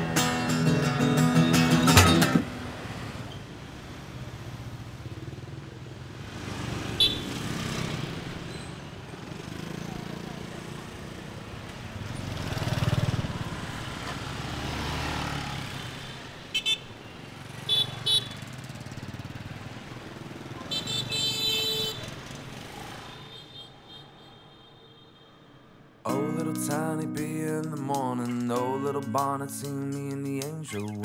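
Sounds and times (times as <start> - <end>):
street traffic noise: 0.0 - 31.0
motorbike engine passing: 6.1 - 16.4
horn toots and honks: 7.0 - 7.3, 17.7 - 18.4.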